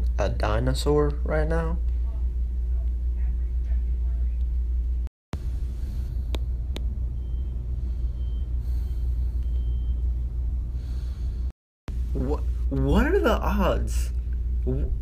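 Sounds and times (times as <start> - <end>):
steady low rumble: 0.0 - 15.0.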